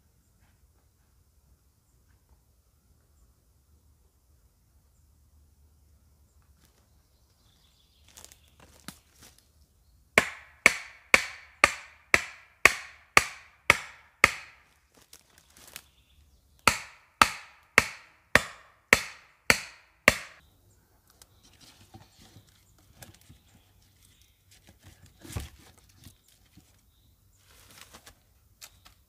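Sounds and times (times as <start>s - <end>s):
axe striking wooden stake: 10.2s - 14.7s, 16.6s - 20.4s.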